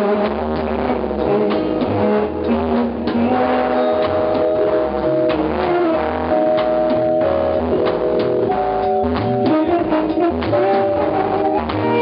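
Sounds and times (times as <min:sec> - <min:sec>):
band playing: 0:00.0 - 0:12.0.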